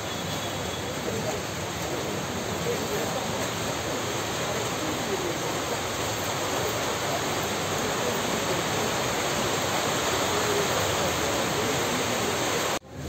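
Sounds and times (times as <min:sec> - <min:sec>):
murmuring crowd voices: 0:00.0 - 0:13.0.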